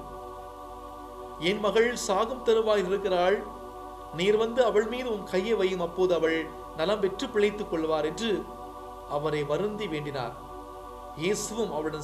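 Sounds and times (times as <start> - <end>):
background music of sustained tones: 0.0 - 12.0
man narrating: 1.4 - 3.5, 4.2 - 8.5, 9.1 - 10.4, 11.2 - 12.0.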